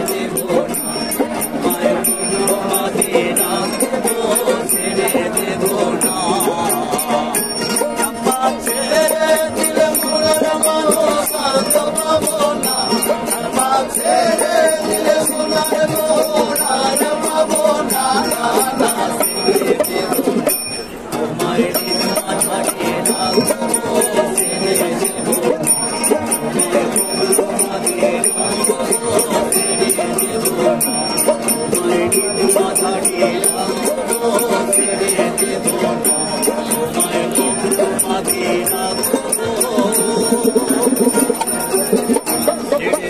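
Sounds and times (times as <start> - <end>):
people singing a folk song: 0.0 - 43.0
ukuleles strumming: 0.0 - 43.0.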